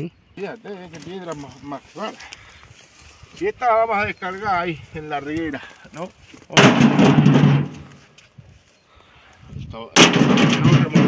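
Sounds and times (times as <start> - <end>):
stones crashing onto a pile: 6.5 - 8.0.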